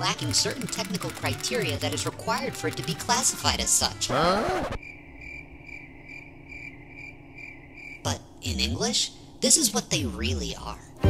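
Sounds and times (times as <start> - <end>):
crickets chirping: 4.8 - 8.2.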